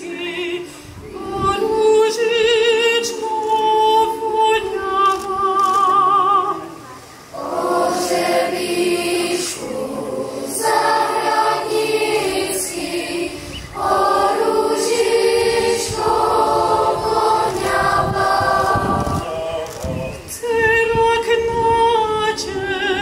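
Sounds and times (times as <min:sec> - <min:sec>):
children's choir singing: 0:00.0 - 0:04.8, 0:07.3 - 0:19.7.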